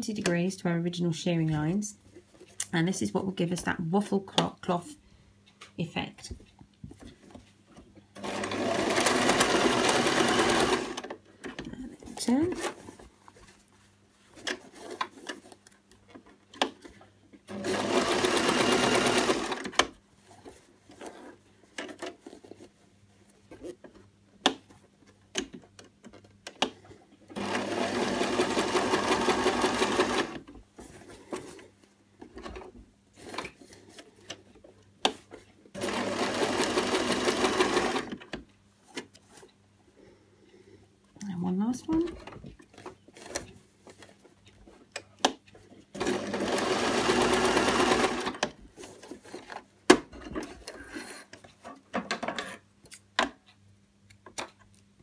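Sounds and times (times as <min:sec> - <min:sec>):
sewing machine stitching: 0:08.2 - 0:11.1, 0:17.5 - 0:19.9, 0:27.4 - 0:30.4, 0:35.8 - 0:38.2, 0:46.0 - 0:48.5.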